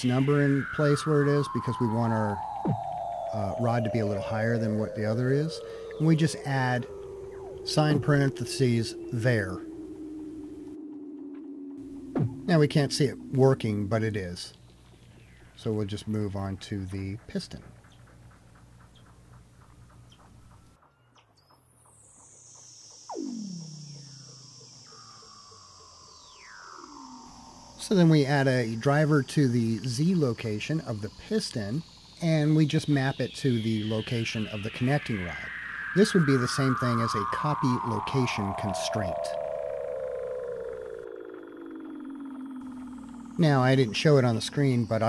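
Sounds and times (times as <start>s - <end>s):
steady high tone: 0.0s - 17.8s, 21.8s - 45.0s
faint rapid clicking: 14.4s - 23.0s.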